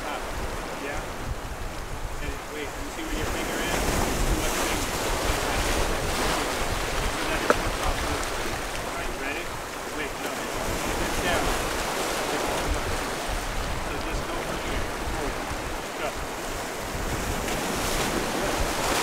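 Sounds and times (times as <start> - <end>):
waves washing over rocks: 0.0 - 19.0
wind buffeting microphone: 0.0 - 19.0.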